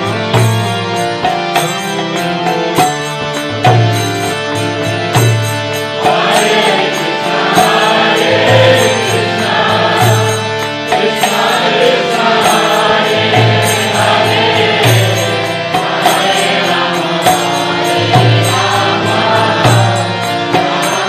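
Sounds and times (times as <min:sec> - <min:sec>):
chanted singing: 0:00.0 - 0:21.0
harmonium chords: 0:00.0 - 0:21.0.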